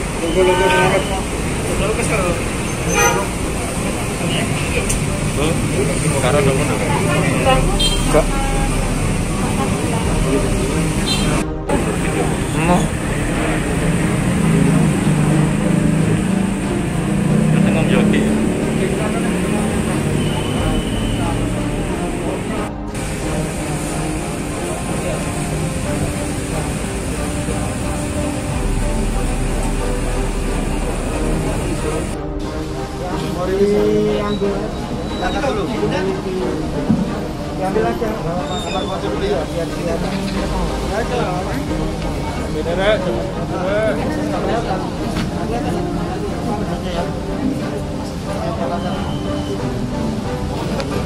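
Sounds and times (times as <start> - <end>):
indistinct background voices: 0.0 - 51.0
road traffic noise: 0.0 - 51.0.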